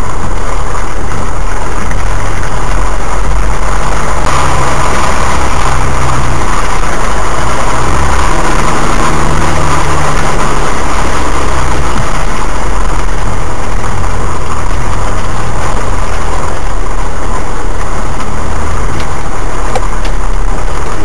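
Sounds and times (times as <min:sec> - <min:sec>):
rushing noise: 0:00.0 - 0:21.0
vehicle engine running at low revs: 0:00.0 - 0:21.0.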